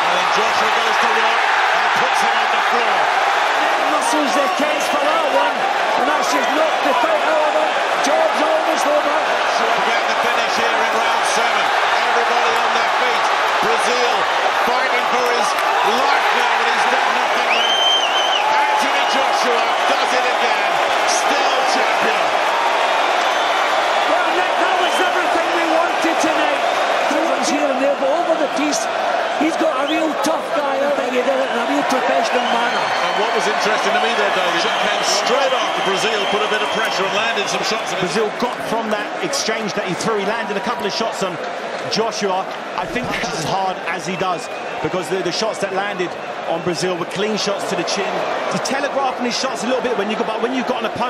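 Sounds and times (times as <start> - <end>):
arena crowd cheering and shouting: 0.0 - 51.0
high whistle: 17.5 - 18.5.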